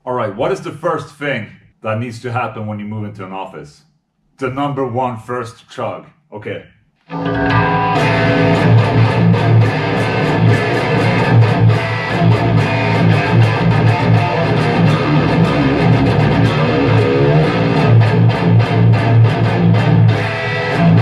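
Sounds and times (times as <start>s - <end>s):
distorted electric guitar riff: 7.0s - 21.0s.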